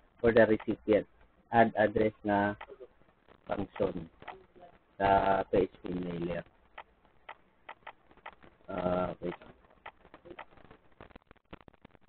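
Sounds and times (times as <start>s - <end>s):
computer keyboard keys clicking: 6.8s - 10.5s.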